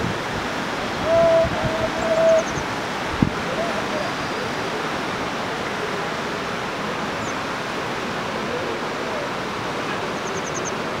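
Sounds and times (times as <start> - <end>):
steady rushing outdoor noise: 0.0 - 11.0.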